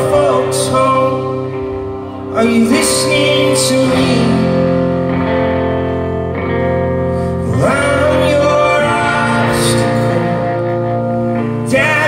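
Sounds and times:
man singing: 0.0s - 5.5s, 7.4s - 12.0s
electric guitar chords: 0.0s - 12.0s.

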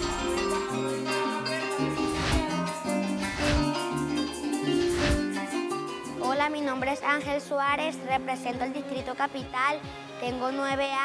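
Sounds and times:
bass line: 0.0s - 5.2s
harp: 0.0s - 6.4s
cuatro strumming: 0.0s - 7.3s
maracas: 0.0s - 7.3s.

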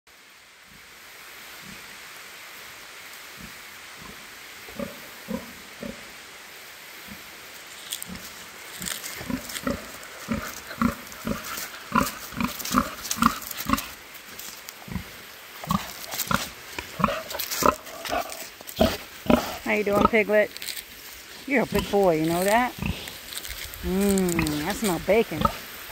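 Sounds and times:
pig grunting: 8.1s - 20.5s, 21.4s - 25.8s.

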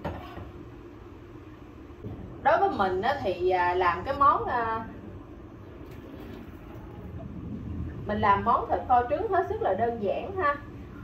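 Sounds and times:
kitchen hum and hiss: 0.0s - 11.0s.

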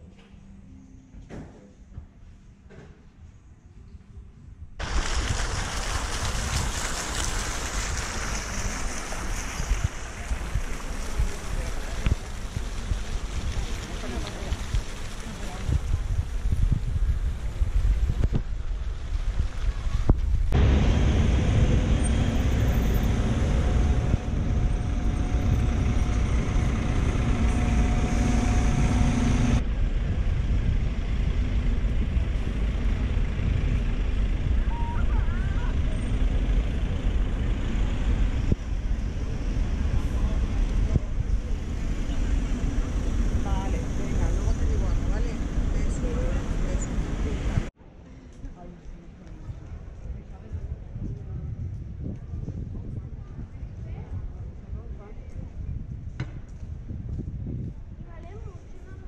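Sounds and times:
wind buffeting microphone: 4.8s - 47.7s, 49.4s - 59.0s
traffic: 4.8s - 52.5s
steady low hum: 20.4s - 34.6s.

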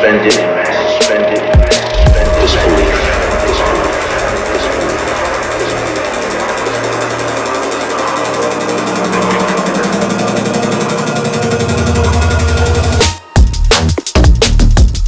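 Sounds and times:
drum and bass music: 0.4s - 15.0s.

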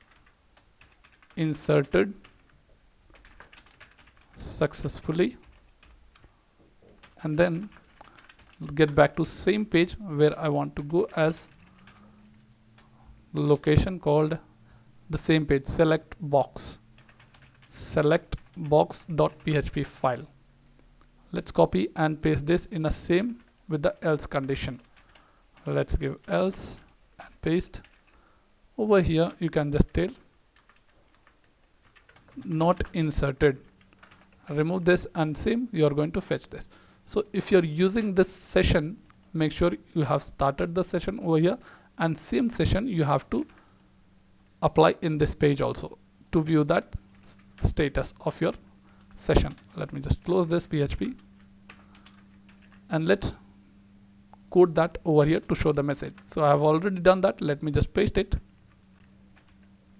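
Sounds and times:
computer keyboard typing: 0.0s - 4.4s, 5.0s - 6.3s, 6.9s - 9.1s, 10.8s - 12.9s, 17.0s - 19.7s, 24.4s - 26.9s, 27.8s - 28.2s, 29.8s - 33.0s, 33.6s - 34.9s, 48.5s - 52.9s, 58.7s - 59.7s.

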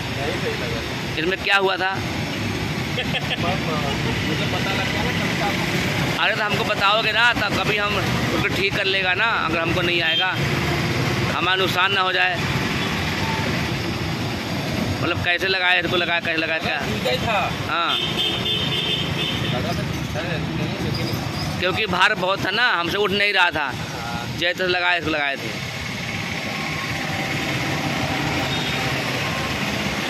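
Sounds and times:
street traffic rumble: 0.0s - 30.0s.

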